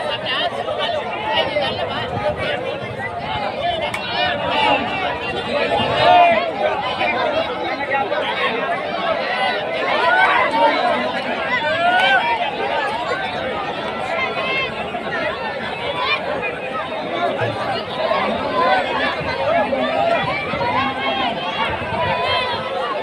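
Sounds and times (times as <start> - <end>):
crowd of men talking and calling out: 0.0 - 23.0.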